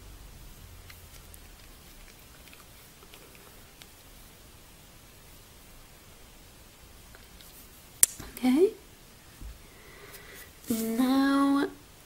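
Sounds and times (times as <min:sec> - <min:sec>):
low steady hiss: 0:00.0 - 0:12.0.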